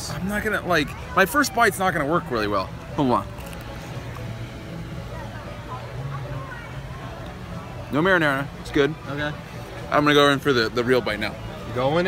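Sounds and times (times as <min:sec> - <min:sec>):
distant voices murmuring: 0:00.0 - 0:12.0
faint music: 0:00.0 - 0:12.0.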